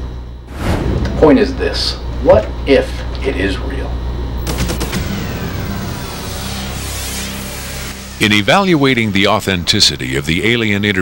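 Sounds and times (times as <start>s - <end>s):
low hum: 0.0s - 10.9s.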